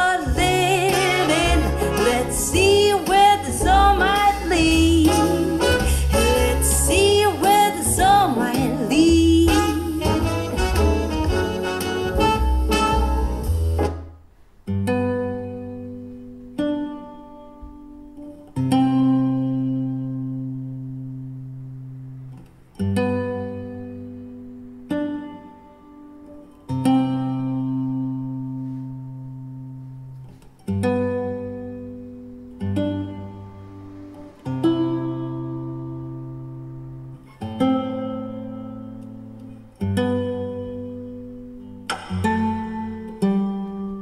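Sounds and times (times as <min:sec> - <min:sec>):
song with singer and band: 0:00.0 - 0:12.8
slow guitar chords: 0:00.0 - 0:44.0.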